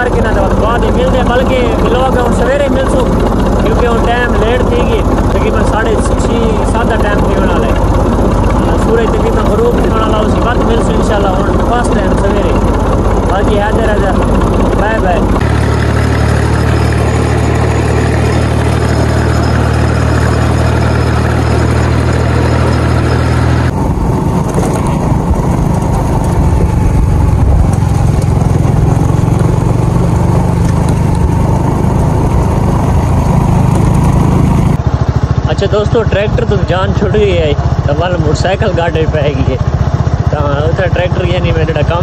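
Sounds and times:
engine running steadily: 0.0 - 42.0
motorcycle riding on dirt track: 0.0 - 42.0.

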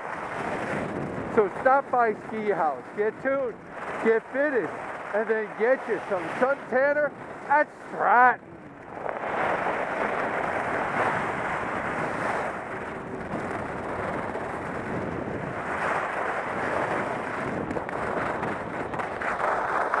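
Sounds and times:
skis sliding over snow: 0.0 - 20.0
wind on microphone: 0.0 - 20.0.

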